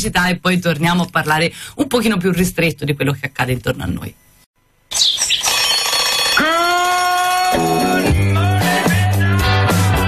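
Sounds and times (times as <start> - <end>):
jingle music: 5.5 - 8.9.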